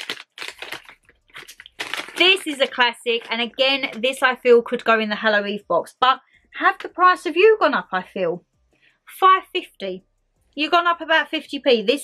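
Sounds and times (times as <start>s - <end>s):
paper bag crinkling: 0.0s - 4.2s.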